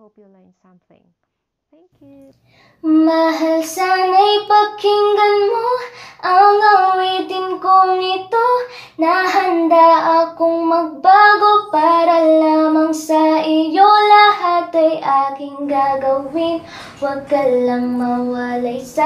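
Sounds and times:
woman singing unaccompanied: 1.9s - 19.0s
short breaths: 2.4s - 2.8s, 5.9s - 6.2s, 8.7s - 9.0s, 16.6s - 17.0s.

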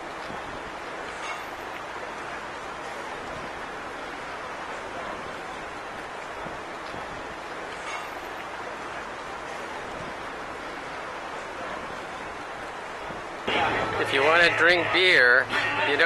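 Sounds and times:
city street background hiss: 0.0s - 16.0s.

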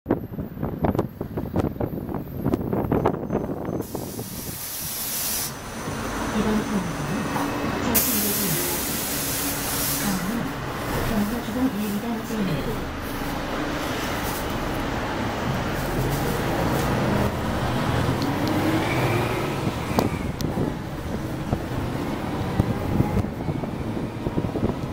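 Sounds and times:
bus engine rumble: 0.1s - 24.9s
air brakes hissing: 3.6s - 6.0s, 6.9s - 10.5s
bus body rattling and knocking: 19.6s - 24.9s.

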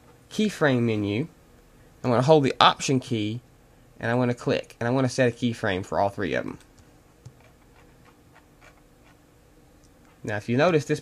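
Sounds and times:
quiet room hum: 0.0s - 11.0s.

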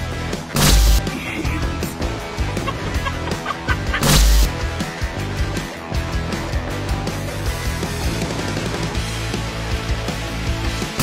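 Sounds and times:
background music: 0.0s - 11.0s
turkey calling: 2.4s - 4.1s.

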